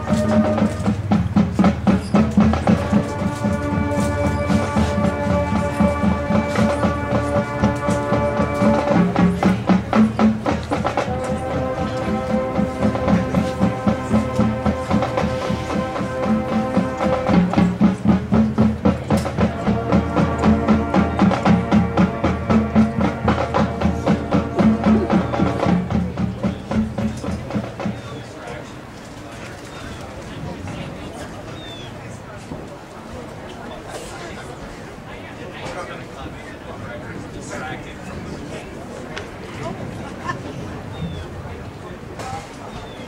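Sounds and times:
percussion strikes: 0:00.0 - 0:28.2
marching band held chords: 0:00.0 - 0:28.9.

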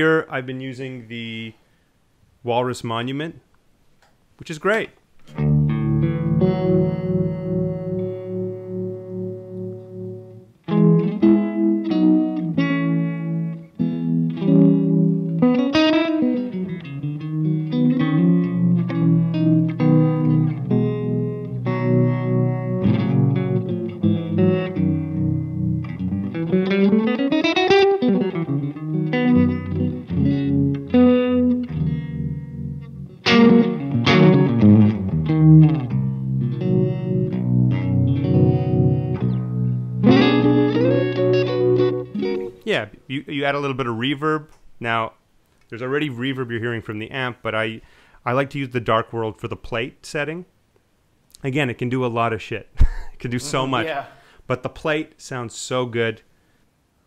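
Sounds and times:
electric guitar with tremolo: 0:05.2 - 0:42.7.

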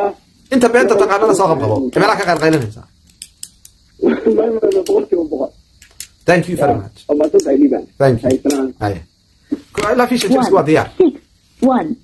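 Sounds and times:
man speaking: 0:06.3 - 0:09.1, 0:09.8 - 0:10.9.

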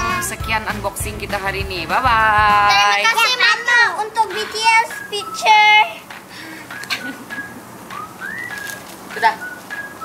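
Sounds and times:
bird whistling: 0:04.4 - 0:06.1, 0:06.7 - 0:10.0.

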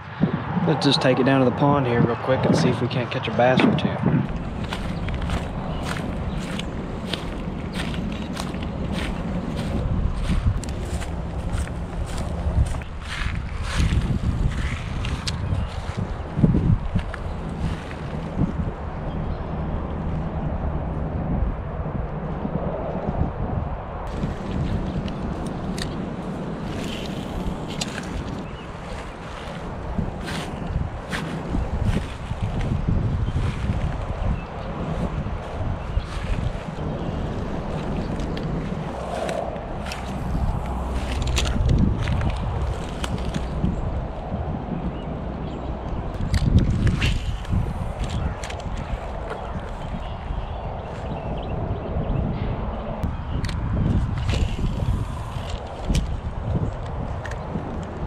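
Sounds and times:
wind buffeting microphone: 0:00.0 - 0:58.0
footsteps walking: 0:04.1 - 0:16.2, 0:24.1 - 0:43.7.

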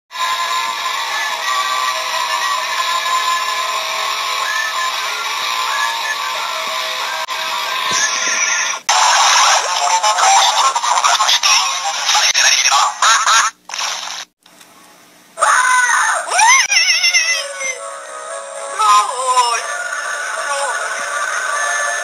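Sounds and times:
busy logo soundtrack with voices: 0:17.5 - 0:22.0.

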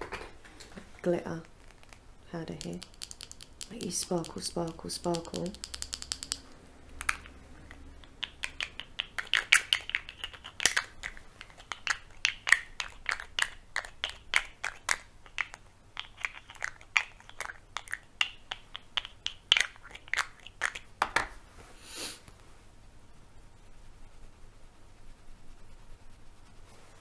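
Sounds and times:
crisp clicks and taps: 0:01.3 - 0:21.3.

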